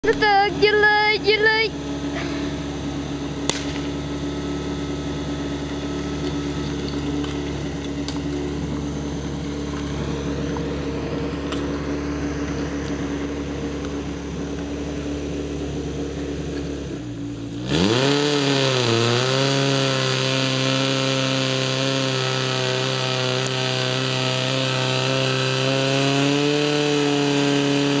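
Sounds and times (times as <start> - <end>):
small pump engine running: 0.0 - 28.0.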